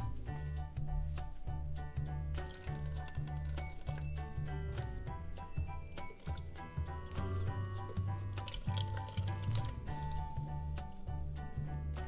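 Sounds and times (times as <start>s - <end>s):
background music with bass line: 0.0s - 12.0s
water fountain trickling: 2.4s - 4.1s, 6.2s - 6.7s, 8.3s - 10.2s.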